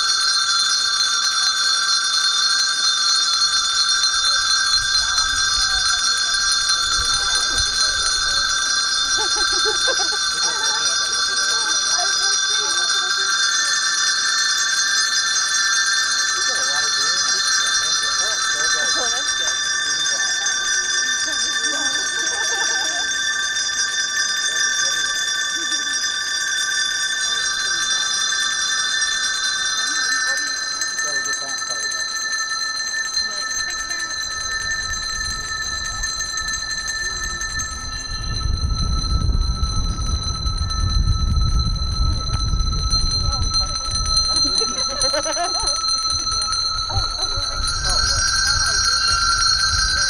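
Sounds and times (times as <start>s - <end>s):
faint crowd chatter: 0.0s - 50.0s
handbells ringing chord: 0.0s - 50.0s
low rumble: 35.0s - 50.0s.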